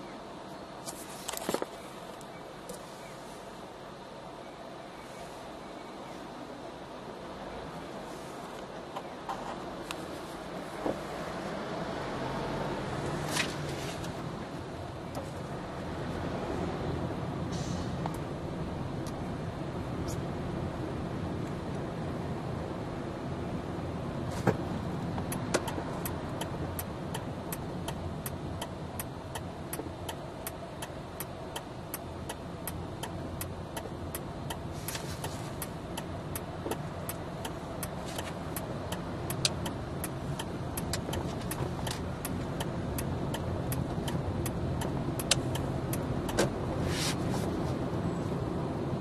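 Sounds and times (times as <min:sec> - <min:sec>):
car engine and road rumble: 0:00.0 - 0:49.0
regular clicking: 0:25.2 - 0:46.5.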